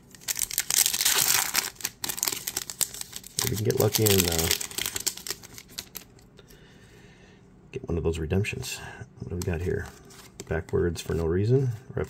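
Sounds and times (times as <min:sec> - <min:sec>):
foil wrapper crinkling and tearing: 0:00.0 - 0:06.2.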